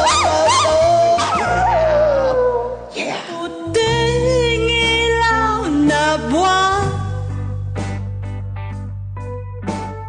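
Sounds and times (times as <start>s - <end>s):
karaoke backing track: 0.0s - 10.0s.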